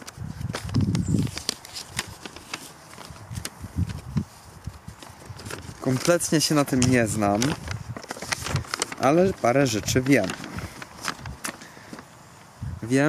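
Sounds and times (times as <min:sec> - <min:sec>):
paper rustling and crackling: 0:00.0 - 0:12.2.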